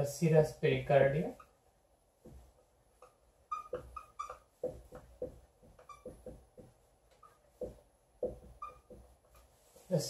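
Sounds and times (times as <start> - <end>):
marker squeaking on whiteboard: 1.2 - 9.6.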